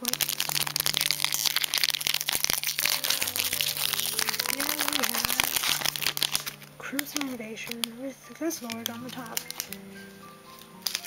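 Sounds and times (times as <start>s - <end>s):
foil wrapper crinkling being torn: 0.0s - 11.0s.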